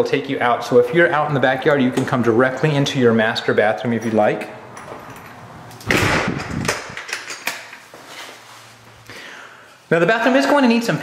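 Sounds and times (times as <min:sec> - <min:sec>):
latch and keys clicking: 0:04.0 - 0:07.8.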